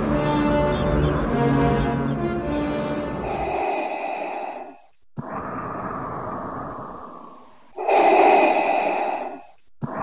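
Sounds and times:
mechanical respirator breathing: 0:03.2 - 0:10.0.

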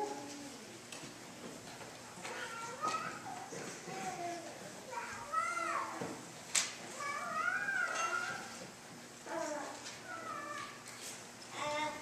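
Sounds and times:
child whining calls: 0:09.3 - 0:10.8.

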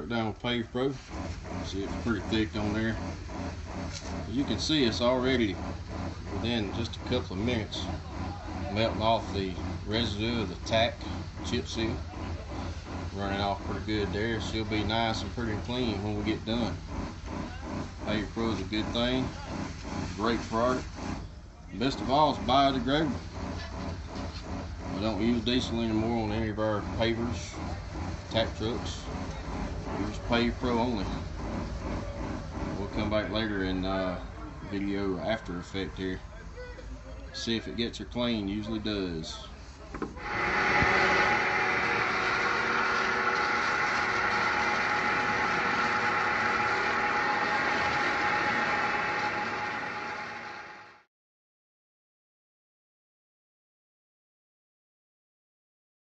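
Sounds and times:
engine idling: 0:00.0 - 0:51.0
water spray hissing: 0:00.8 - 0:33.4, 0:40.1 - 0:50.7.

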